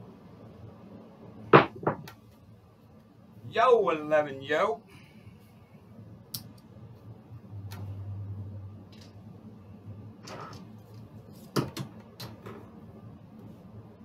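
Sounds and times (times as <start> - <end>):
low hum: 4.9 - 11.3.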